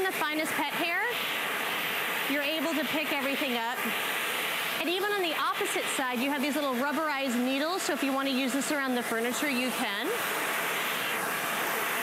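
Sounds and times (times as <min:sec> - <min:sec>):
vacuum cleaner suction: 0:00.0 - 0:12.0.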